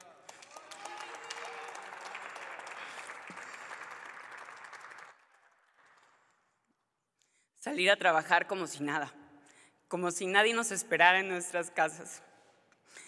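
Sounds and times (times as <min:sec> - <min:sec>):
applause: 0:00.0 - 0:06.7.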